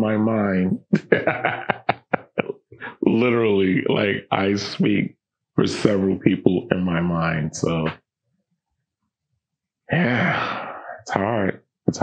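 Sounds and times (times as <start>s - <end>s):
man's voice: 0.0s - 8.0s, 9.9s - 12.0s.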